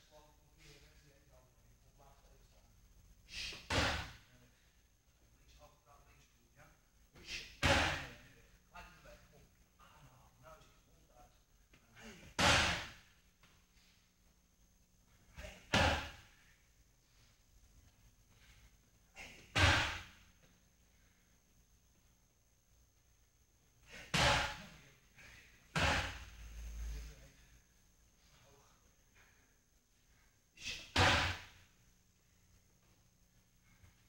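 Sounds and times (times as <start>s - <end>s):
heavy slaps on pads: 3.7s - 4.2s, 12.4s - 13.0s, 19.5s - 20.2s, 24.1s - 24.6s, 30.9s - 31.5s.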